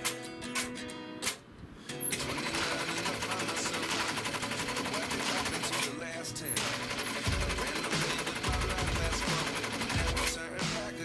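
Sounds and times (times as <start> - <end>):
sewing machine stitching: 2.1 - 10.5
music with deep bass beat: 6.6 - 11.0.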